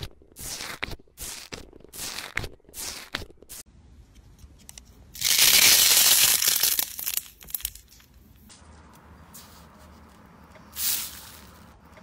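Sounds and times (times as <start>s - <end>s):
slime crackling and tearing: 5.2s - 7.9s.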